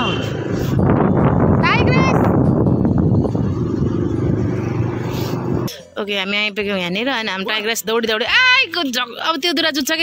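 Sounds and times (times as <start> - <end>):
road and wind rumble: 0.0 - 6.8.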